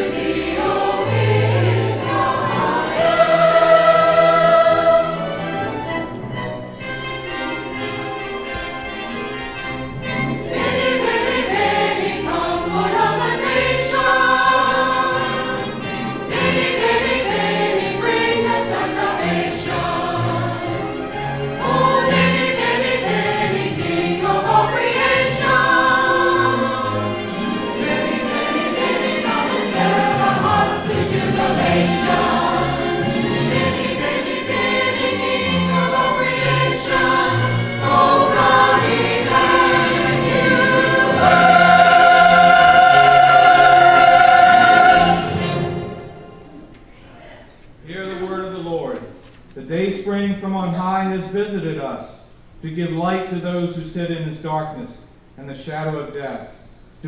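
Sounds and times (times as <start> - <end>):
mixed choir singing: 0.0 - 7.9, 10.0 - 46.7.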